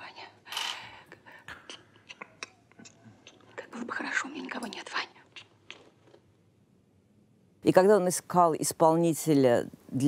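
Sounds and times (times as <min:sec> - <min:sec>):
person whispering: 0:00.0 - 0:00.5, 0:03.6 - 0:05.2
soft mouth clicks: 0:01.1 - 0:03.8, 0:04.4 - 0:06.2.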